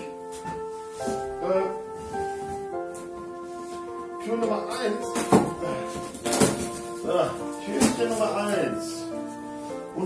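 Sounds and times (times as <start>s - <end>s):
background music with held notes: 0.0s - 10.0s
man speaking: 7.0s - 9.1s.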